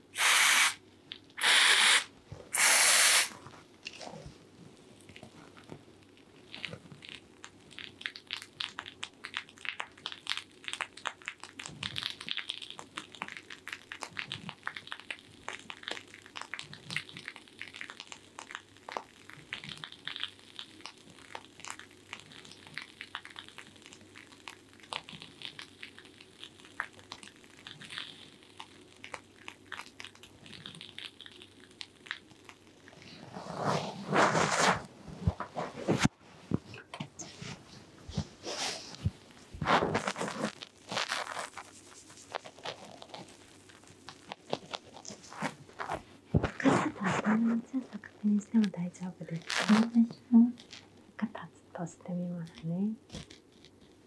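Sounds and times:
fingertips rustling through hair: 32.9s - 47.9s.

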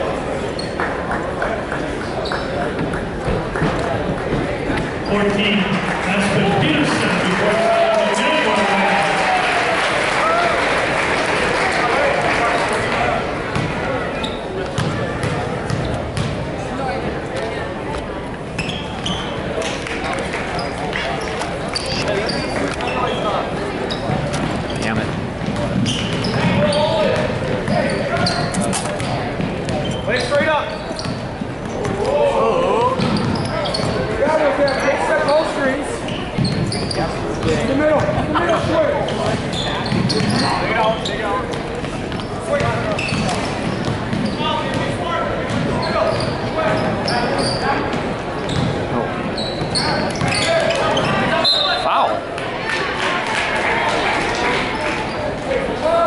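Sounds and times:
crowd and player voices shouting: 6.3s - 13.0s
basketball bouncing on court: 13.5s - 13.8s, 14.6s - 16.5s, 23.9s - 30.1s, 32.8s - 34.0s, 36.3s - 40.5s, 41.5s - 47.2s, 47.9s - 48.8s.

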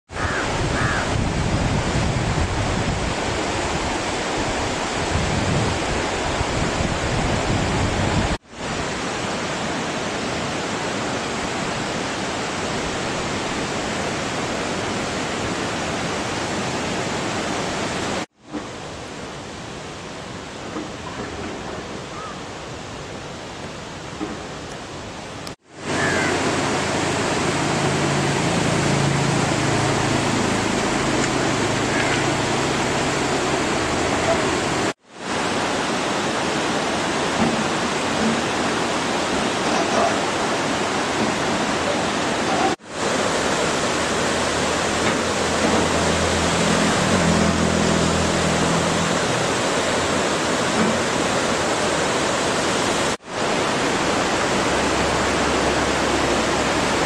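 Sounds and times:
river rushing over boulders: 0.1s - 57.0s.

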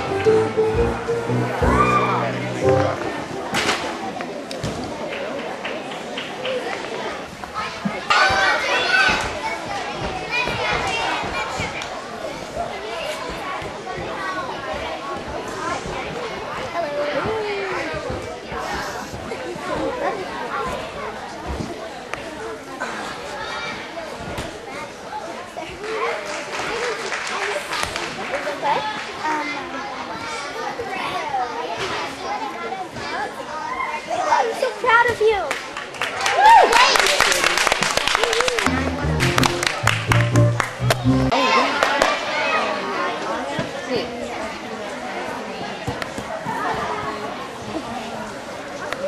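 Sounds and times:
children chattering and calling out: 0.0s - 5.4s, 6.4s - 35.6s, 41.1s - 49.0s.

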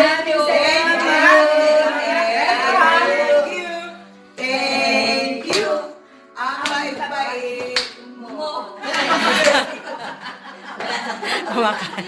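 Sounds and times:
group of voices: 0.0s - 12.0s
hand claps: 5.4s - 5.8s, 6.6s - 6.9s, 7.6s - 8.0s, 8.9s - 9.7s.

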